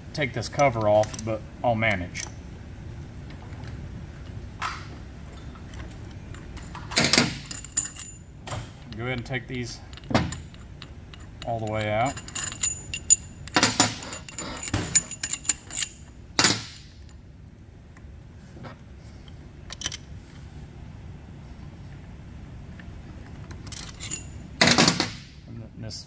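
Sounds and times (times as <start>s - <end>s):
steel bolts clinking on metal: 6.3s - 8.2s, 8.8s - 16.9s, 23.6s - 25.2s.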